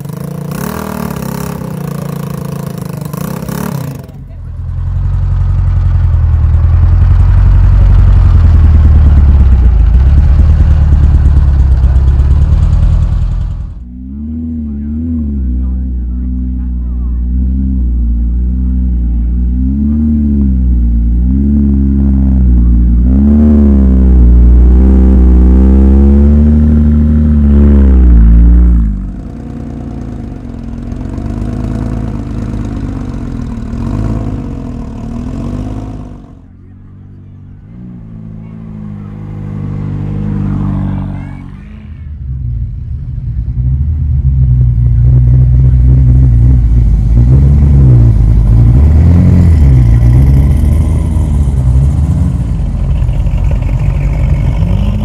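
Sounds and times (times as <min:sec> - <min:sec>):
car engines driving past: 0:00.0 - 0:55.0
engine throttle blips: 0:00.0 - 0:55.0.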